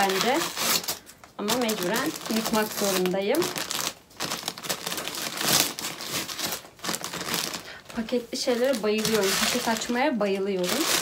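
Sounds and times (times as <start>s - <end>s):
mailer bag crinkling and tearing: 0.0s - 11.0s.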